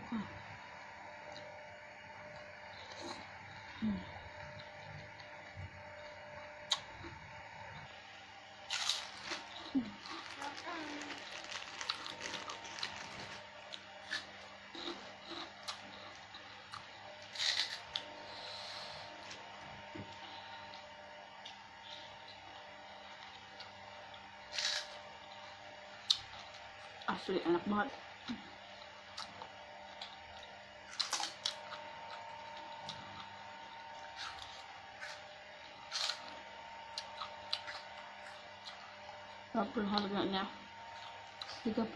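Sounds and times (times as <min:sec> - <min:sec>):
chewing and crunching food: 0:02.2 - 0:08.0, 0:08.6 - 0:40.2, 0:40.8 - 0:41.7.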